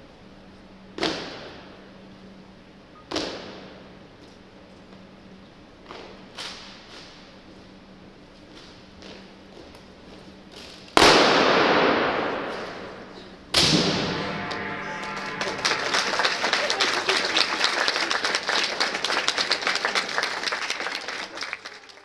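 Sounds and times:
wind band loud crashes: 13.6 - 18.1
held brass chord: 13.6 - 18.8
audience applause: 14.1 - 22.0.

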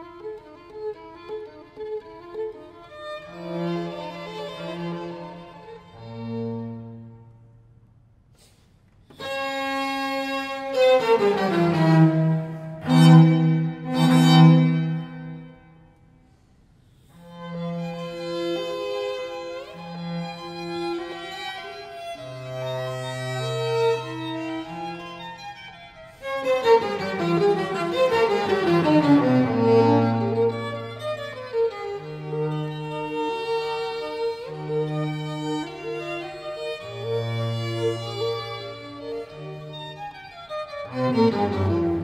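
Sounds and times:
string quartet playing: 0.0 - 7.4, 9.1 - 15.6, 17.1 - 42.0.

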